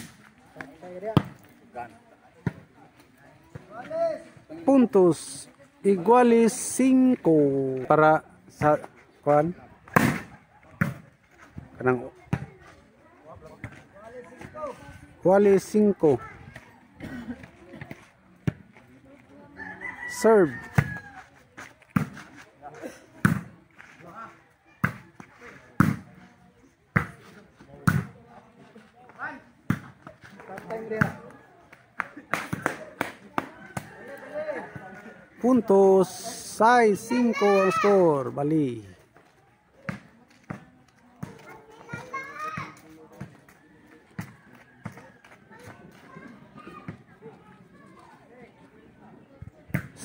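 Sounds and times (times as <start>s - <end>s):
children calling and chattering: 1.4s - 50.0s
volleyball slap: 9.8s - 11.0s, 27.8s - 28.2s, 29.7s - 33.9s
rooster crowing: 19.6s - 21.3s.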